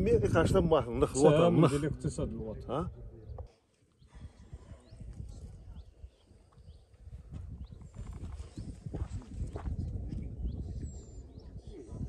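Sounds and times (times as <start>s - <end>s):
wind rumbling on microphone: 0.0s - 1.2s, 1.8s - 12.0s.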